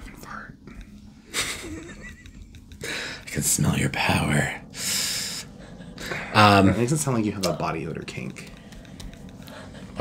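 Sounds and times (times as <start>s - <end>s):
man wheezing laugh: 1.3s - 3.1s.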